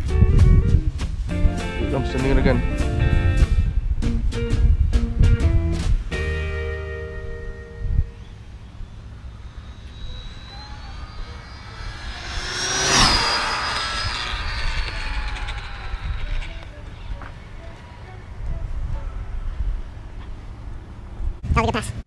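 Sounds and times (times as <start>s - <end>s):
wind rumble on microphone: 0.0s - 6.1s, 7.7s - 22.0s
rc car motor whine passing: 8.2s - 19.4s.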